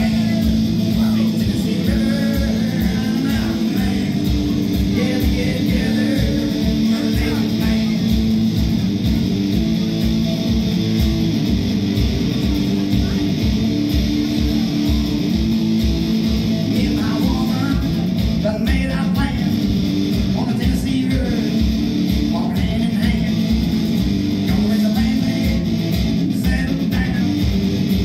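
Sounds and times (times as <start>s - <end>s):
man singing: 0.0s - 8.4s, 16.6s - 19.7s, 20.3s - 23.6s, 24.4s - 27.5s
electric guitar strummed: 0.0s - 28.0s.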